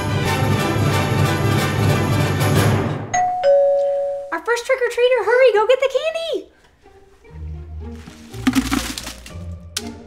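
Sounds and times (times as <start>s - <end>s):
two-tone doorbell chime: 3.1s - 4.3s.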